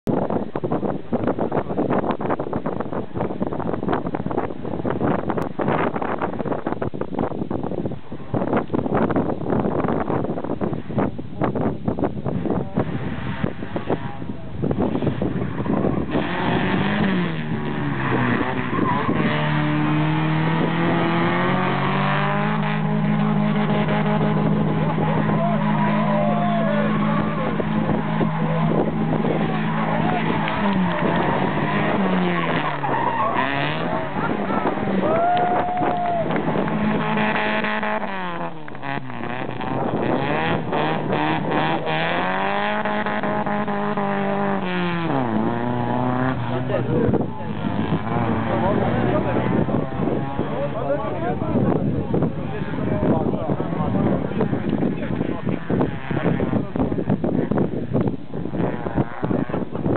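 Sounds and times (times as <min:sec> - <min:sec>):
rally car engine passing by: 0:12.8 - 0:59.9.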